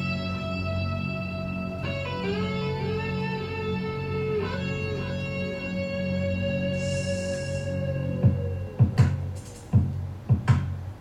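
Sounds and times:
sustained electric guitar notes: 0.0s - 9.4s
steady low bass: 0.0s - 11.0s.

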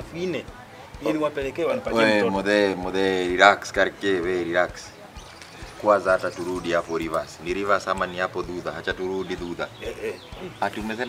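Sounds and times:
man speaking: 0.0s - 4.9s.

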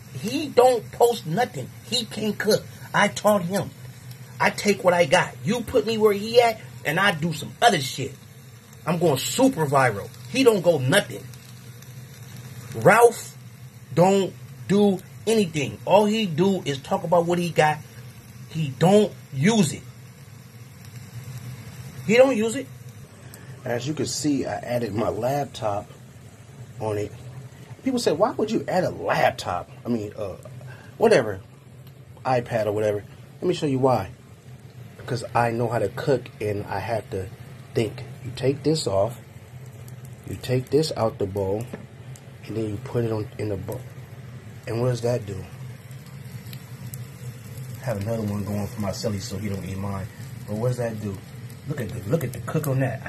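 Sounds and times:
food sizzling on a skillet: 0.0s - 53.0s
low steady hum: 0.0s - 53.0s.

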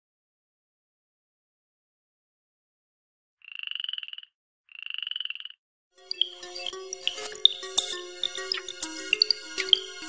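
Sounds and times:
frog trilling: 3.4s - 7.6s.

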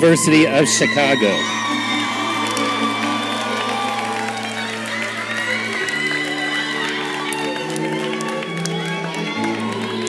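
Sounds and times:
audience cheering and clapping: 0.0s - 10.0s
whoops: 0.0s - 10.0s
music of sustained chords: 1.4s - 10.0s.

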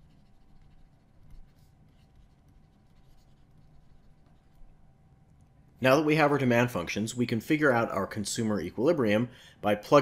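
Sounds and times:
stylus scratching on tablet screen: 0.0s - 4.9s.

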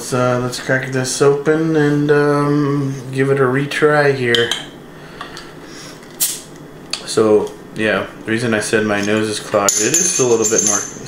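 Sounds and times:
carbonation hissing: 5.0s - 6.6s.

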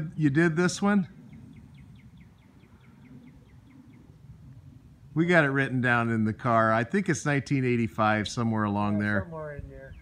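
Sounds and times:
songbird trilling: 1.1s - 4.2s.

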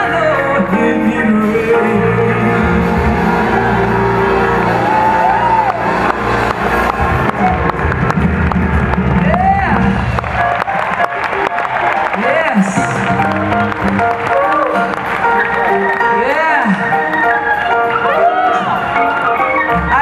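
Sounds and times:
live gospel band music: 0.0s - 20.0s
crowd cheering and whooping: 2.4s - 20.0s
rising and falling shout: 2.7s - 7.3s.

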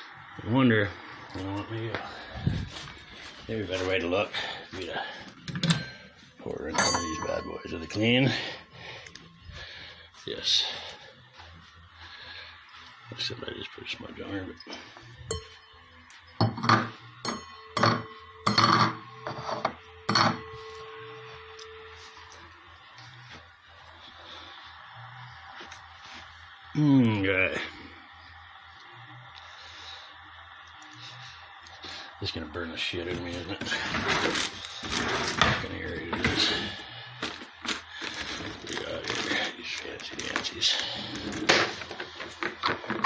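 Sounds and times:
metal ringing tone: 5.6s - 8.6s, 15.2s - 22.6s
steel bowl scraping on stove: 16.4s - 20.5s, 33.6s - 36.7s.

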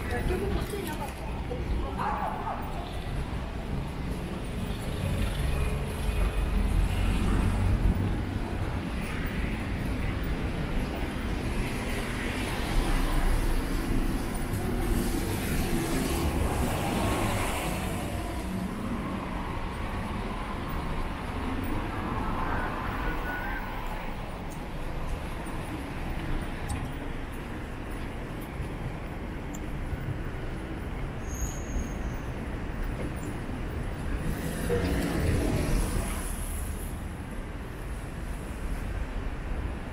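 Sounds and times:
cars passing: 0.0s - 31.2s, 32.2s - 39.9s
low traffic rumble: 0.0s - 39.9s.

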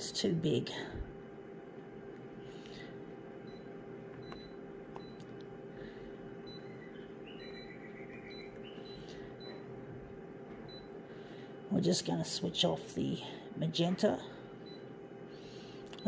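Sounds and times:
photocopier hum: 0.0s - 16.0s.

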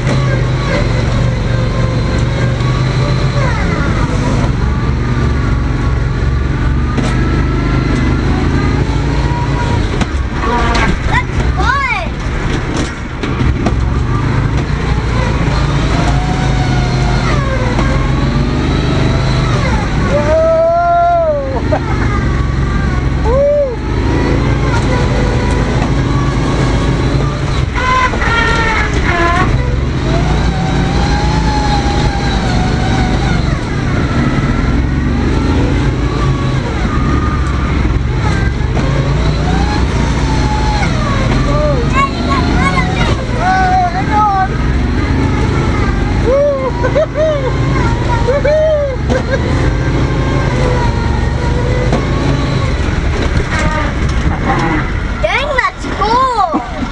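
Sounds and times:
off-road vehicle engine revving: 0.0s - 56.9s.

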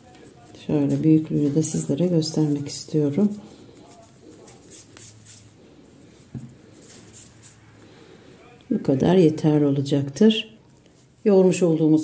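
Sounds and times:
hands rolling dough: 0.0s - 8.0s.

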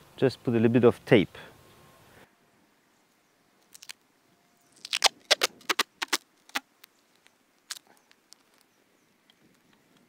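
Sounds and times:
tape crackling: 3.6s - 4.1s, 4.7s - 8.7s
tape ripping off roll: 3.7s - 4.0s, 4.7s - 6.7s.

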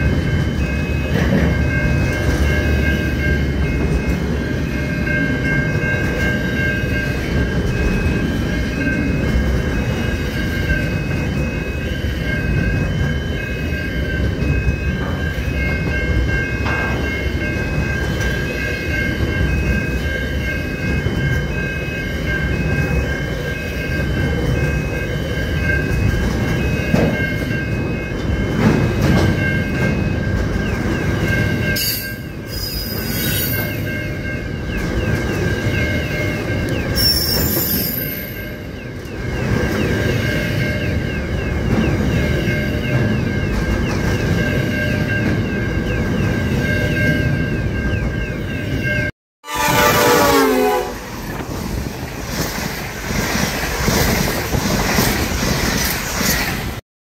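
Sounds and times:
high-pitched ringing tones: 0.0s - 50.9s
train wheels rumbling on rails: 0.0s - 56.8s.

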